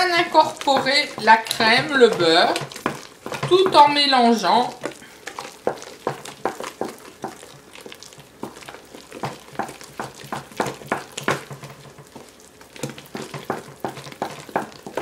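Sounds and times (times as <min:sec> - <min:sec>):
spoon stirring mashed potato: 0:00.0 - 0:15.0
spoon knocking against metal pot: 0:00.1 - 0:04.0, 0:09.2 - 0:12.2, 0:13.1 - 0:15.0.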